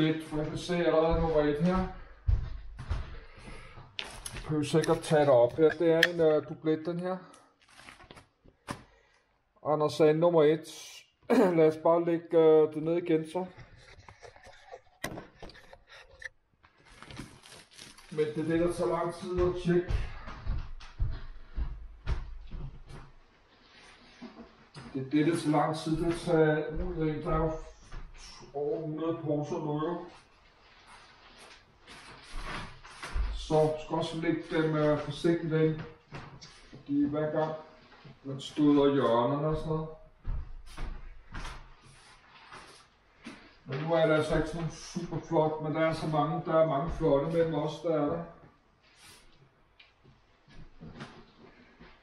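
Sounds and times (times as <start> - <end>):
footsteps on wooden floor: 0.1 - 6.1, 18.5 - 28.2, 31.9 - 33.8, 39.5 - 43.4
plastic bags crinkling: 7.6 - 8.4, 16.8 - 18.4.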